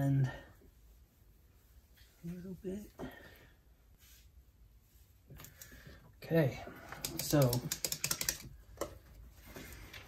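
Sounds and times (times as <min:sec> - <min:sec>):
light clicks and taps: 0:06.9 - 0:09.2.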